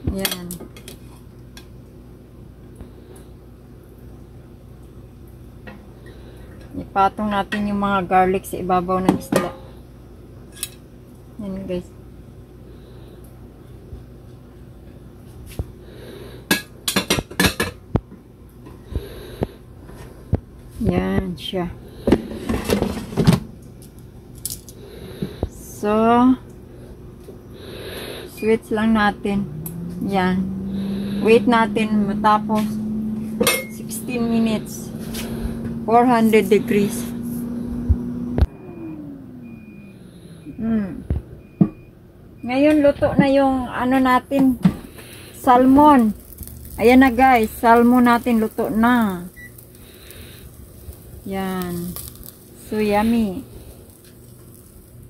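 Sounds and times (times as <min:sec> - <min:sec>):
faint low hum: 0:17.9 - 0:54.9
air fryer beeps: 0:38.4 - 0:40.8, 0:41.4 - 0:42.9, 0:47.5 - 0:49.6.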